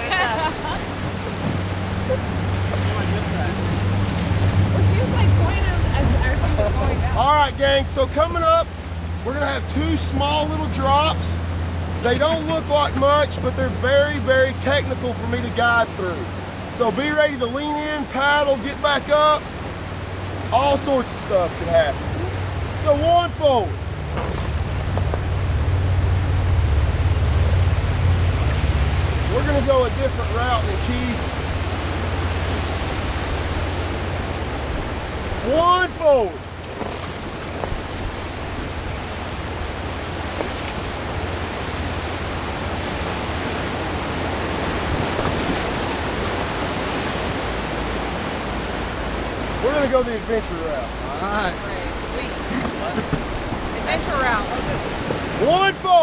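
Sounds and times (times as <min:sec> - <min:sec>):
paddle splashes: 0:00.0 - 0:07.2, 0:08.0 - 0:56.0
river rapid rushing: 0:00.0 - 0:56.0
wind on microphone: 0:51.9 - 0:55.4.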